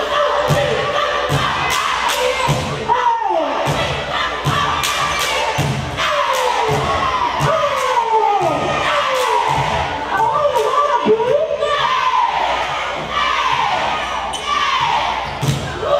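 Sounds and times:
crowd noise in a gym: 0.0s - 15.9s
girls shouting a chant: 0.0s - 15.9s.

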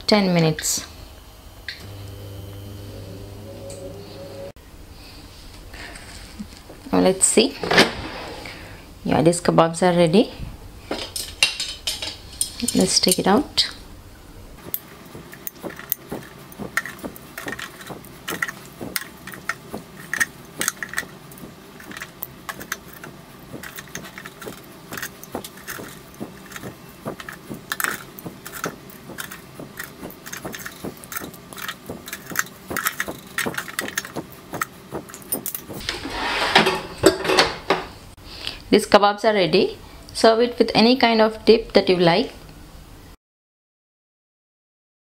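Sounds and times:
metal tongs clinking on basket: 11.0s - 13.4s
handling noise: 14.6s - 38.0s.

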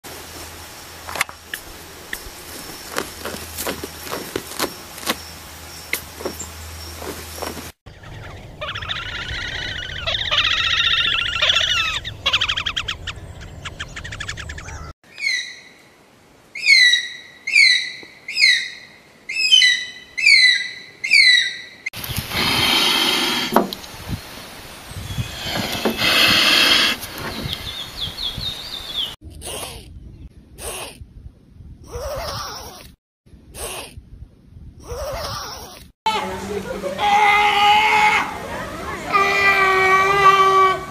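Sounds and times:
animal chattering calls: 7.9s - 15.5s
eagle whistled calls: 7.9s - 15.8s.

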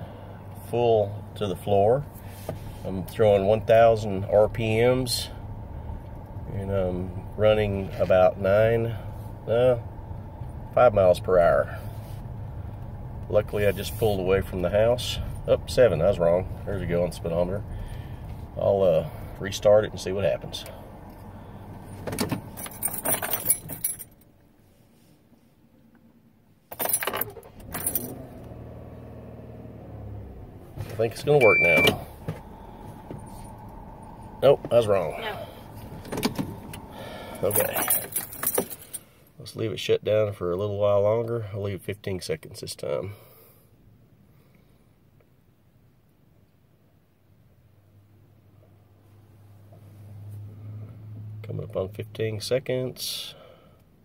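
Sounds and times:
car engine idling: 0.0s - 24.5s, 26.8s - 39.4s
low steady hum: 0.0s - 54.0s
keys jangling: 22.5s - 24.2s, 37.5s - 39.0s.

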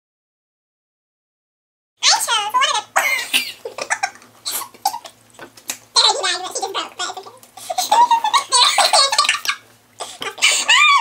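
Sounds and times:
girls laughing: 3.0s - 5.2s, 7.6s - 11.0s.

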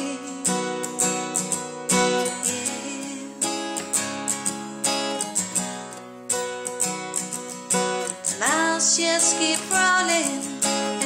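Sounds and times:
person singing: 0.0s - 3.9s, 8.3s - 11.0s
acoustic guitar strumming chords: 0.0s - 11.0s.

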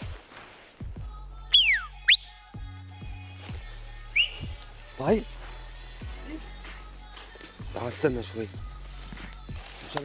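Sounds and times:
person whistling a call: 1.5s - 2.3s, 4.1s - 4.5s.

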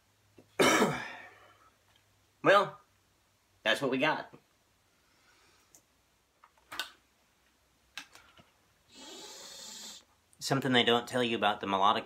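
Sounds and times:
breath blown through tube: 8.9s - 10.1s.

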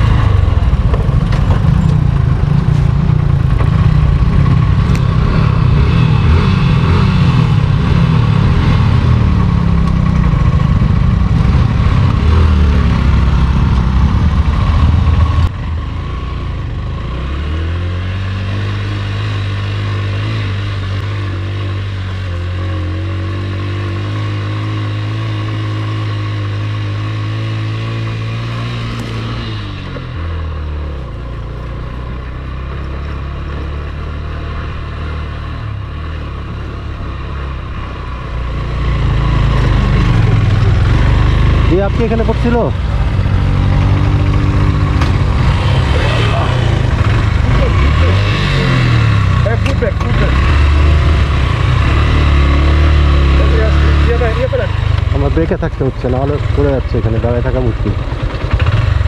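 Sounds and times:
motorcycle engine under load: 0.0s - 59.0s.

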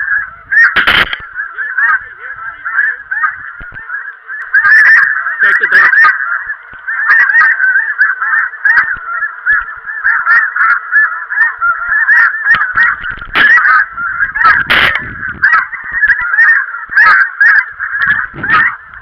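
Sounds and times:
geese honking: 0.0s - 19.0s.

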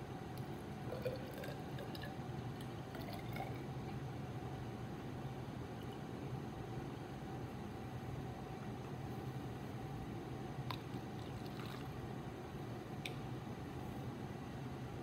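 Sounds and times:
steady room hum: 0.0s - 15.0s
water trickling into a cup: 0.9s - 4.0s, 10.7s - 12.0s.

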